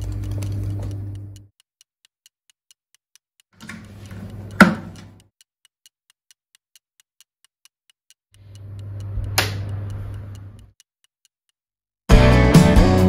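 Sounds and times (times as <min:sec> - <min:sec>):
fast clock-like ticking: 0:00.0 - 0:10.9.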